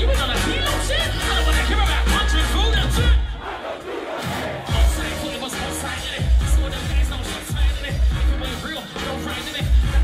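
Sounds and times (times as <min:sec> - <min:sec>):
live band through pa: 0:00.0 - 0:03.4, 0:04.2 - 0:10.0
crowd yelling: 0:00.0 - 0:08.1.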